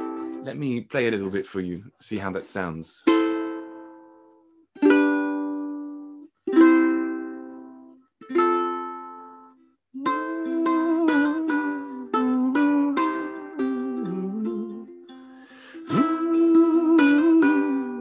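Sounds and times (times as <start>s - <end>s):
ukulele plucked notes: 0.0s - 0.5s, 3.0s - 18.0s
ukulele strummed chords: 0.0s - 0.6s, 3.0s - 18.0s.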